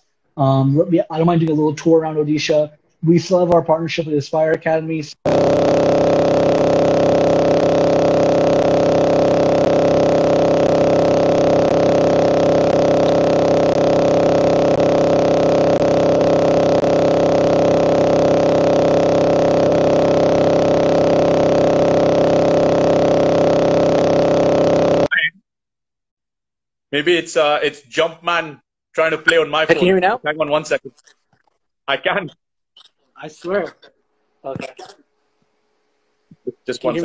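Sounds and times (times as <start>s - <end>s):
electronic buzz of glitching audio: 5.2s - 25.2s.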